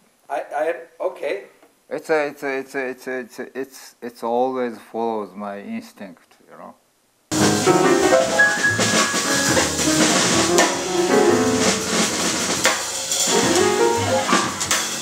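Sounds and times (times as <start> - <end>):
drum and cymbal strokes: 7.3 - 15.0
improvised jazz piano: 7.3 - 15.0.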